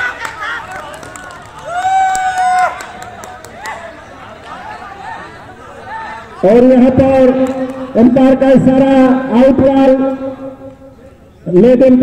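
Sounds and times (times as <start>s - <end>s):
overlapping chatter: 0.0s - 11.6s.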